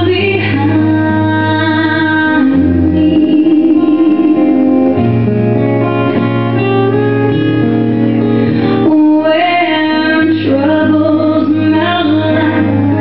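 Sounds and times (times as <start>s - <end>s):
woman singing with vibrato: 0.0s - 5.0s, 8.6s - 13.0s
guitar holding chords: 0.0s - 13.0s.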